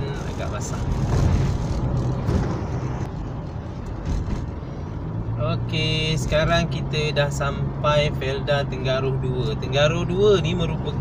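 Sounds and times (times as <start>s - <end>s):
car engine hum: 0.0s - 11.0s.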